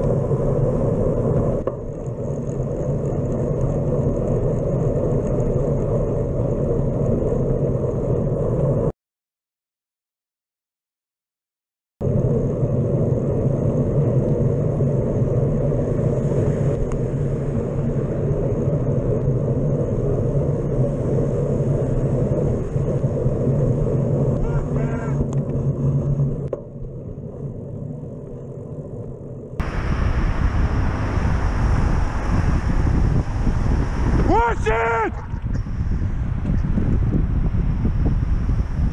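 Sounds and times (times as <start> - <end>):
wind rumble: 0.0 - 8.9, 12.0 - 38.9
traffic: 12.0 - 38.9.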